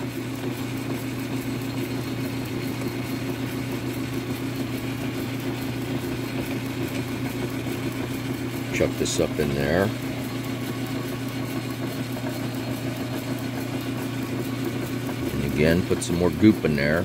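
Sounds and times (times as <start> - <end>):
metal lathe humming: 0.0 - 17.0.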